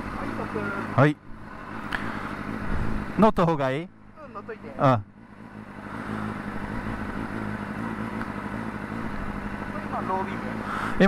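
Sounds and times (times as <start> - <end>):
motorcycle engine idling: 0.0 - 11.0.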